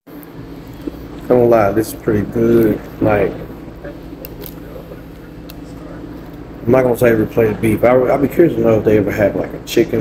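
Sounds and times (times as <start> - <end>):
ventilation hum: 0.1 - 10.0.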